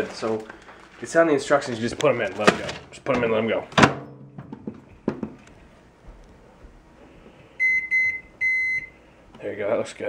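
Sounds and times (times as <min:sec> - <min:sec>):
microwave keypad beeping: 0:07.6 - 0:09.0.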